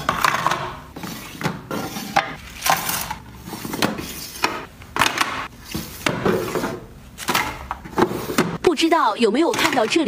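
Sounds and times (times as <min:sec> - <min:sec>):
plastic drawers sliding and knocking shut: 0:00.0 - 0:08.6
small items clacking into plastic drawers: 0:09.5 - 0:10.0.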